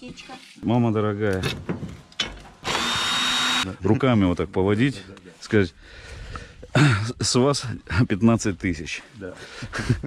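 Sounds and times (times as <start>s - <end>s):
power drill whining: 2.6s - 3.7s.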